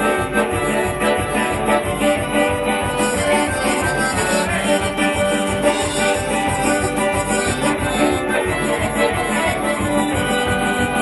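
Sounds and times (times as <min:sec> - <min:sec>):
button accordion: 0:00.0 - 0:11.0
fast low beat: 0:00.0 - 0:11.0
hurdy-gurdy drones: 0:00.0 - 0:11.0.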